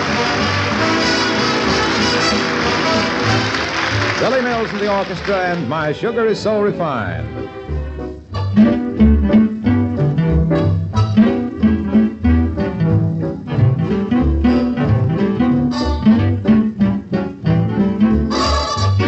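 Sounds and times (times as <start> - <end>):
plucked double bass: 0.0 - 4.2, 7.2 - 19.0
big band swing music: 0.0 - 19.0
rhythm guitar: 0.0 - 19.0.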